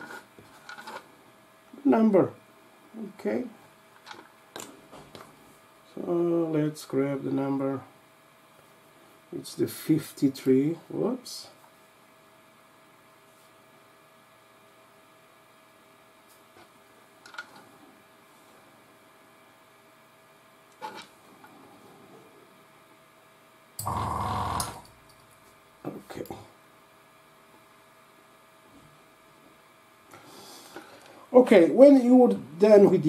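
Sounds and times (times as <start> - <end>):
faint steady hum: 0.0 - 33.0.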